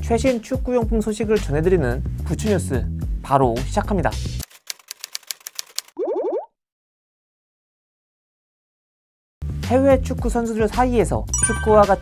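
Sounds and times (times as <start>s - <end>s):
typewriter key clicks: 4.4s - 5.9s.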